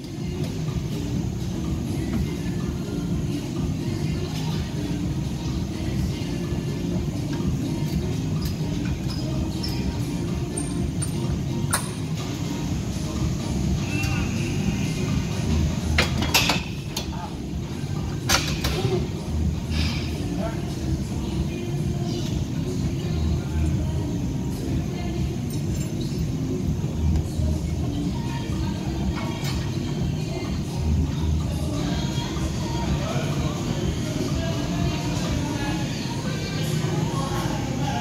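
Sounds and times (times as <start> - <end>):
music playing: 0.0 - 38.0.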